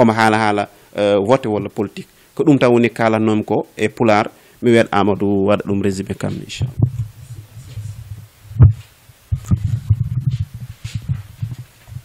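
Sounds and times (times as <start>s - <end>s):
microphone handling thumps: 6.1s - 12.0s.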